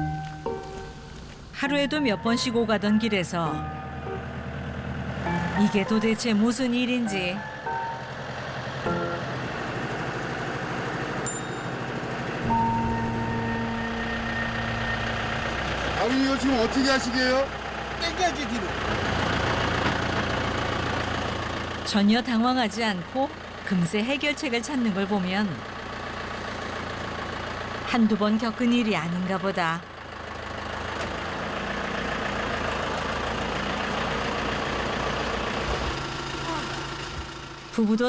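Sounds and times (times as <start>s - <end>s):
tractor engine running: 0.0s - 38.0s.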